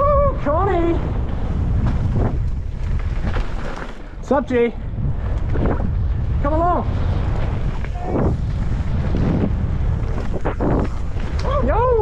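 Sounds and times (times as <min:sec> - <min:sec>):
wind rushing over microphone: 0:00.0 - 0:12.0
tyres rolling over loose dirt: 0:01.0 - 0:04.6, 0:05.2 - 0:12.0.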